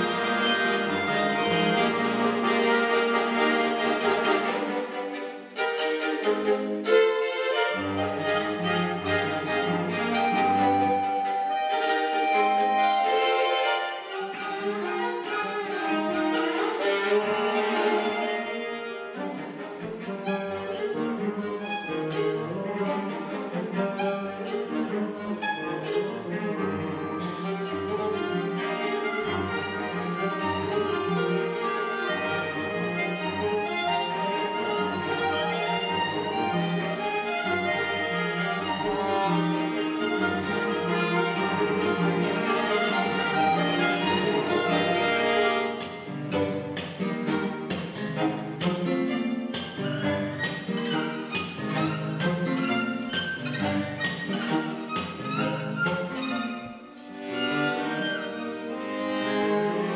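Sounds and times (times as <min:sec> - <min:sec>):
chamber ensemble playing: 0:00.0 - 0:59.9.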